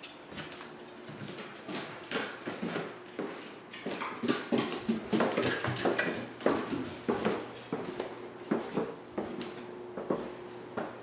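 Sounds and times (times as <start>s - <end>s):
quick footsteps on wooden stairs: 0.3s - 11.0s.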